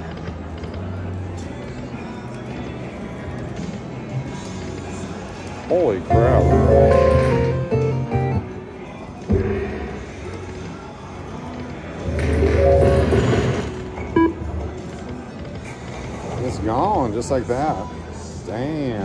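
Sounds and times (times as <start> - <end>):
slot machine game music: 6.1 - 8.6, 12.0 - 14.7.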